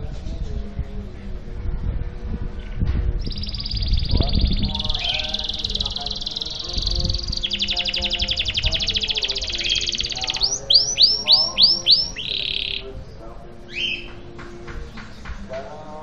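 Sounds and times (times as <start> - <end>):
canary singing: 3.2 - 16.0.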